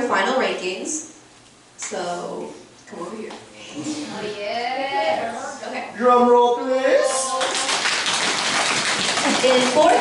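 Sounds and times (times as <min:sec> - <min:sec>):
hands drumming rapidly: 0:07.5 - 0:10.0.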